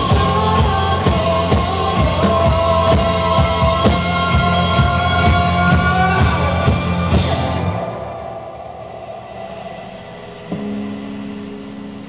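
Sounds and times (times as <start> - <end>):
amplified band: 0.0 - 12.0.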